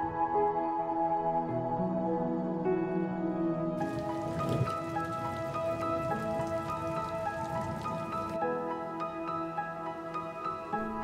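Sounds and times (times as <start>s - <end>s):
soft ambient music: 0.0s - 11.0s
rain on wet paving: 3.8s - 10.7s.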